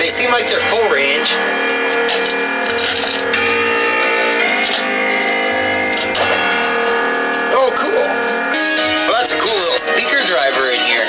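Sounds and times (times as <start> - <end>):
plucked string music through speaker: 0.0 - 11.0.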